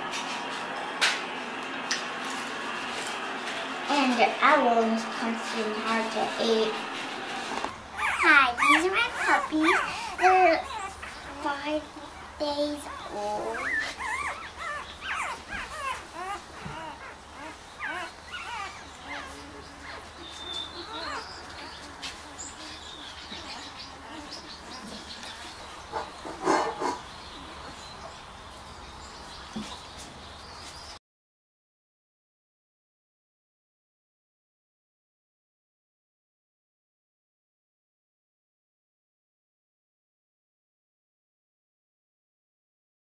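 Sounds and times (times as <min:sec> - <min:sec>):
puppies whimpering and squeaking: 0:03.9 - 0:31.0.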